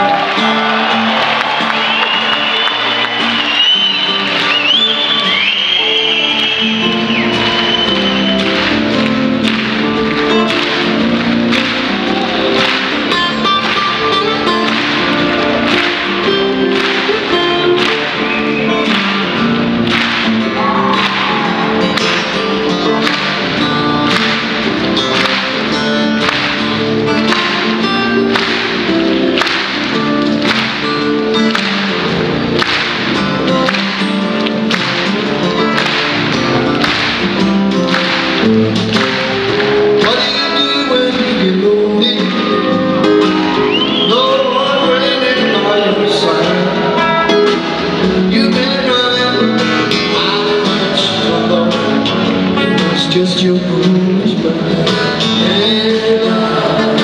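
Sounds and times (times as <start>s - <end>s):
acoustic guitar picking: 0.0s - 57.0s
bass: 0.0s - 57.0s.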